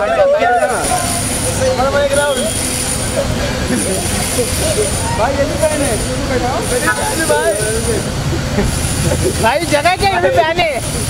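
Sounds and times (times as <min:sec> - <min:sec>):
thin high whine: 0:00.0 - 0:08.0
people talking indistinctly: 0:00.0 - 0:11.0.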